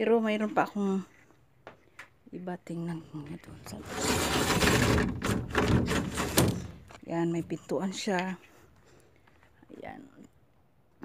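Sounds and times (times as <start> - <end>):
plastic door panel knocking: 4.8 - 6.9.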